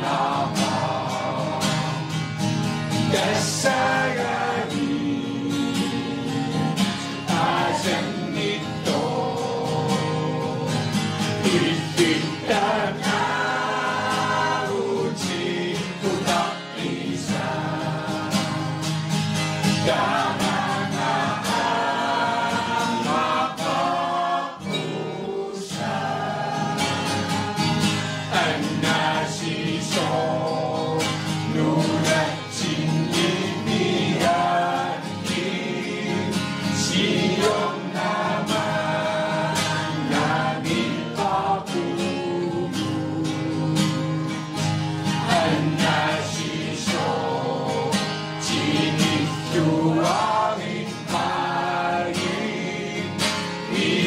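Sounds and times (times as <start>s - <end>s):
mixed choir singing: 0.0s - 54.0s
strummed acoustic guitar: 0.0s - 54.0s.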